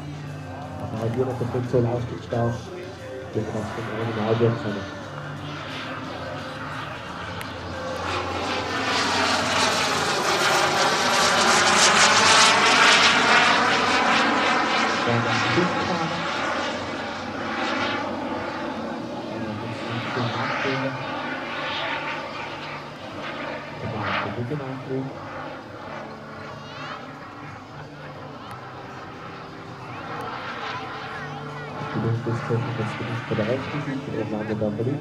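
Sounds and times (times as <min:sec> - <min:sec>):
model jet engine flying past: 0:00.0 - 0:35.0.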